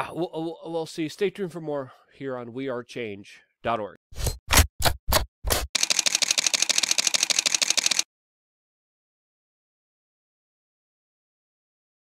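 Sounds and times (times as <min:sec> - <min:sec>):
camera shutter clicking in a burst: 0:05.8 - 0:08.1.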